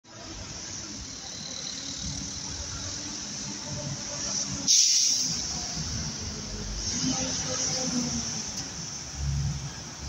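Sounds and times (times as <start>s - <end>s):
bus engine rumble: 0.0s - 10.0s.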